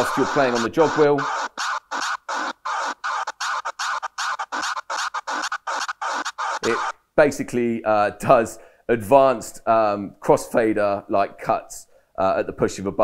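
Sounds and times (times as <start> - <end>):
dj scratch sample cuts: 0.0 - 6.9.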